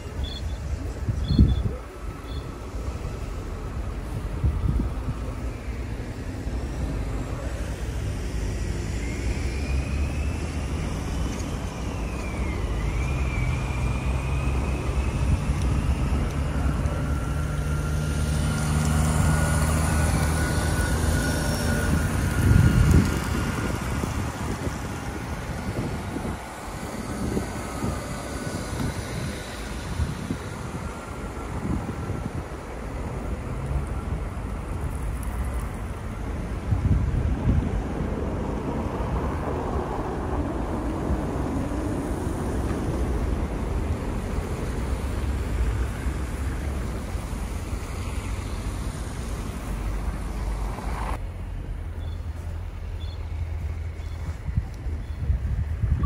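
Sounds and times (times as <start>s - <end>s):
cars driving past on snowy road: 0.0s - 56.0s.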